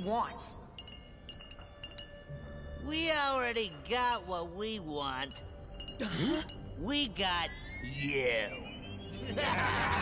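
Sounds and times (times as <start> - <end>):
light glass clinks: 0.7 - 2.3, 3.6 - 4.4, 5.2 - 6.7.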